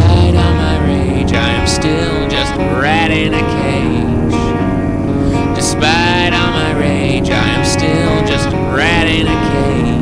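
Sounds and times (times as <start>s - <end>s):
song with sustained chords: 0.0s - 10.0s.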